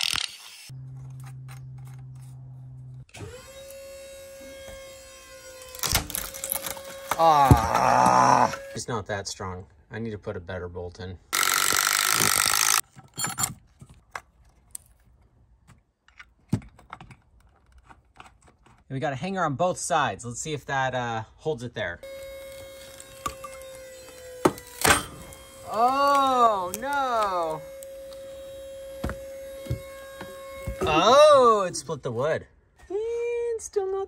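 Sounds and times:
cordless drill boring through wood: 0:03.1 - 0:08.8, 0:11.4 - 0:12.8, 0:22.0 - 0:31.6
steady electric hum: 0:22.0 - 0:31.6.

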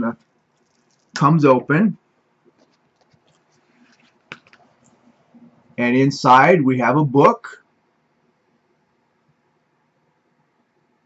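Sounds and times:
faint handling of paper folio: 0:02.5 - 0:05.0.

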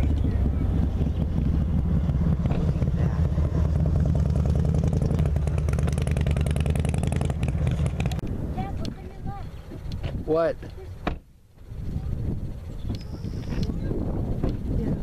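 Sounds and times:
engine running with rapid pulsing: 0:00.0 - 0:15.0.

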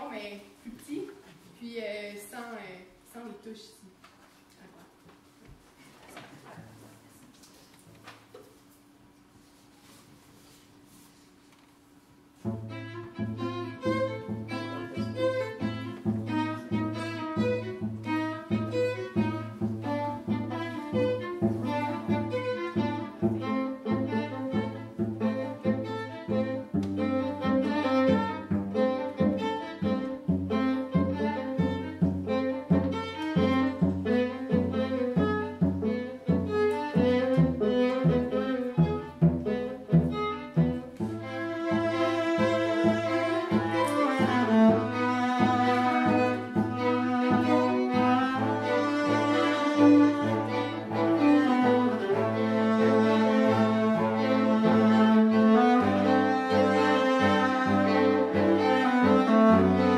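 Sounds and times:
string quartet playing tango: 0:12.3 - 0:59.9.

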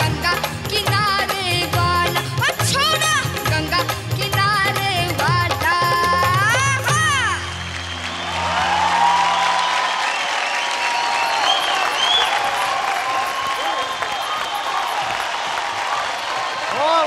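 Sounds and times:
audience applauding: 0:06.9 - 0:17.0.

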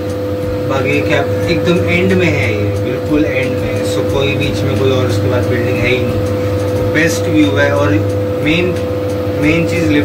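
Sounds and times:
constant tone: 0:00.0 - 0:10.0
lift mechanical hum: 0:00.0 - 0:10.0.

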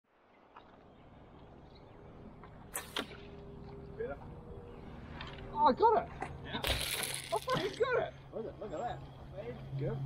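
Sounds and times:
bow shot cracks: 0:02.7 - 0:03.3.

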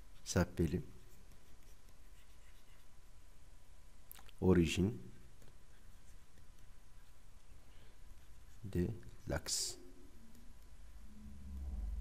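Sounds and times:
low steady background hiss: 0:00.0 - 0:12.0
stylus scratching on tablet: 0:00.1 - 0:03.1, 0:05.1 - 0:11.1.

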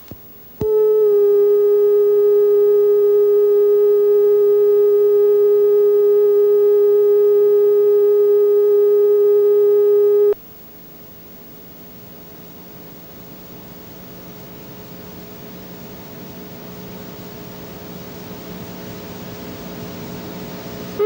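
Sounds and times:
faint hum: 0:00.0 - 0:21.0
steady test tone: 0:00.6 - 0:10.4.

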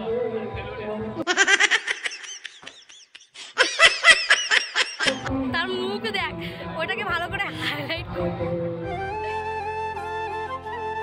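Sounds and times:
high-pitched giggling: 0:01.2 - 0:05.3.

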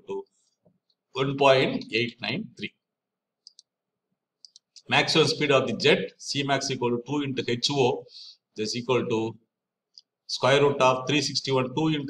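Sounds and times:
computer mouse clicks: 0:03.4 - 0:03.8.

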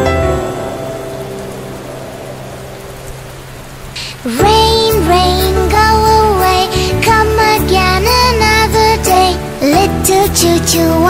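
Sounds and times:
rain falling: 0:00.0 - 0:11.0
soft music: 0:00.0 - 0:11.0.

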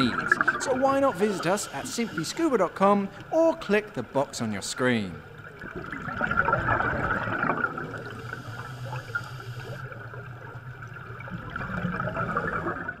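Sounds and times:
underwater air bubbles gurgling: 0:00.0 - 0:03.4, 0:05.0 - 0:13.0.

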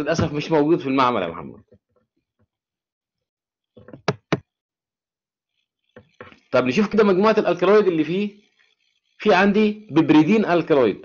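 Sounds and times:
quick knocks: 0:03.8 - 0:04.5.

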